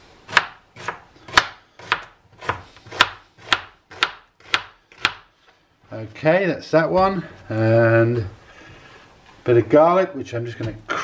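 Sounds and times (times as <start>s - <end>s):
knife chopping on plastic board: 0.3s - 5.3s.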